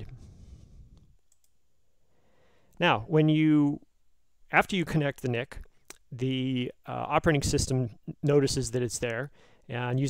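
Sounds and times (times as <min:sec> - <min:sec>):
faint mouse clicks: 0:00.9 - 0:01.6.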